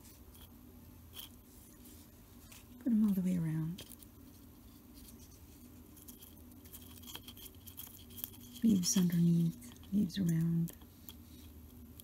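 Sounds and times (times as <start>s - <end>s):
woman speaking: 2.8s - 3.8s, 8.6s - 10.8s.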